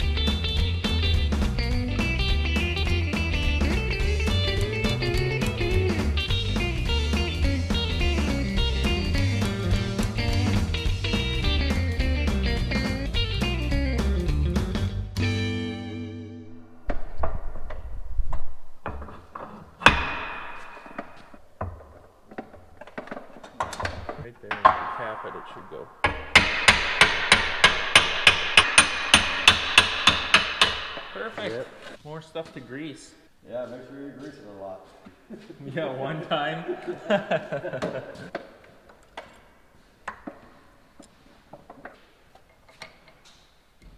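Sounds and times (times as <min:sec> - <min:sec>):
guitar music: 0:00.0 - 0:16.8
metallic knocks and clicks: 0:16.9 - 0:25.2, 0:26.0 - 0:31.5
sharp metallic taps: 0:26.0 - 0:31.6.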